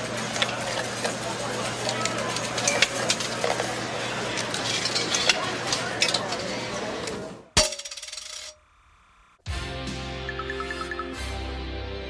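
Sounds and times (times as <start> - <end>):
tv end credits audio: 9.5 - 12.0.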